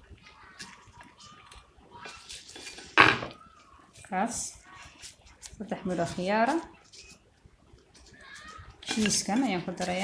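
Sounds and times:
knife scraping and tapping: 0:08.0 - 0:10.0.

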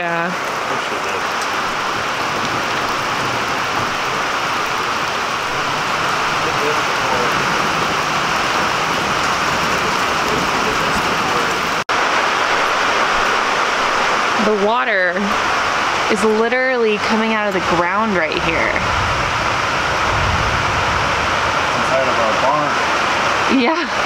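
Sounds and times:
rain falling on puddles: 0:00.0 - 0:24.0.

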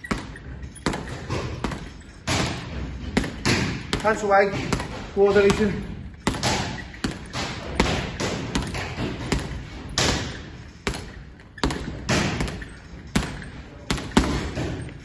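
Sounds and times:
boxing gloves thudding on ball: 0:00.0 - 0:15.0.

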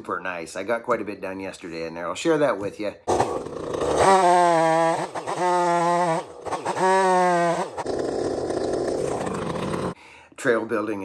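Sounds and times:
chainsaw revving and cutting log: 0:03.1 - 0:10.0.

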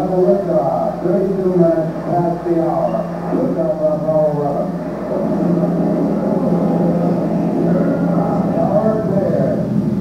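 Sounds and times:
low rumble with hum: 0:00.0 - 0:10.0.

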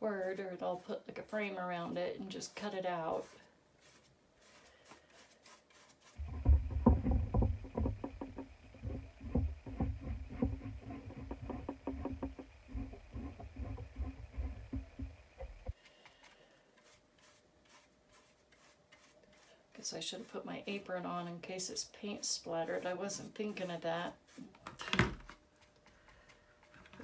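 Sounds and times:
paintbrush scratchy strokes: 0:00.0 - 0:24.5.

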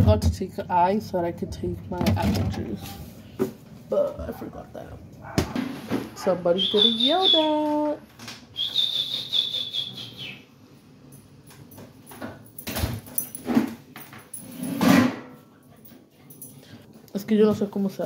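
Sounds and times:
dog barking: 0:05.2 - 0:06.5.

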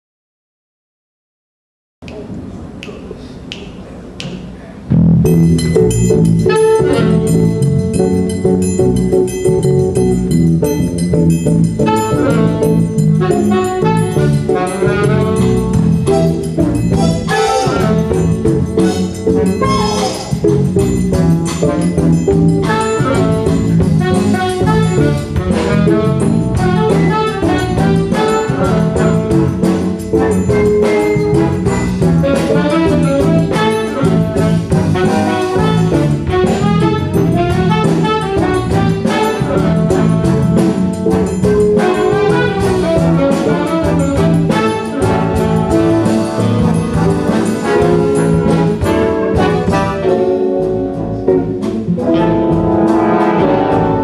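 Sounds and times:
finger snaps: 0:02.0 - 0:04.5
big band playing: 0:04.0 - 0:54.0
horn section ensemble lines: 0:06.1 - 0:07.6, 0:11.5 - 0:54.0.

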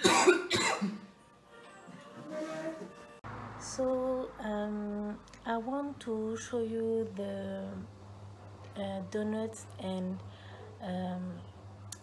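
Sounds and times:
loud coughs: 0:00.0 - 0:01.1
faint music: 0:00.0 - 0:12.0.

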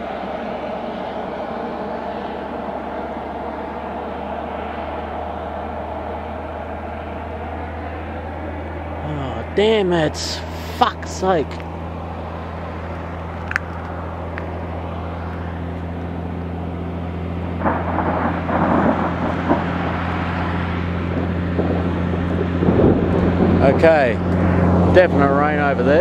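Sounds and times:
road traffic passing: 0:00.0 - 0:26.0
steady low hum: 0:00.0 - 0:26.0.

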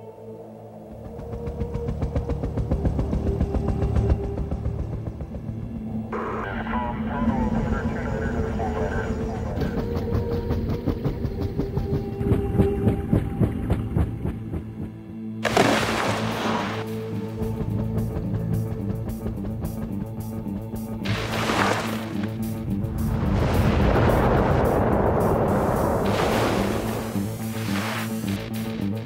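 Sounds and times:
low droning music: 0:00.0 - 0:29.0
helicopter rotor chopping: 0:01.1 - 0:15.1.

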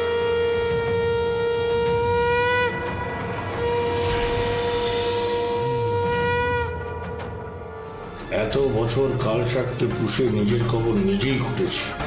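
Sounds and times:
conch shell blown: 0:00.0 - 0:08.1.

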